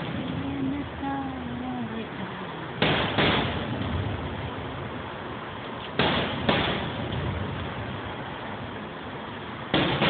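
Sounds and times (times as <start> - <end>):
firework shells bursting: 2.8 - 4.2, 5.9 - 8.1, 9.7 - 10.0.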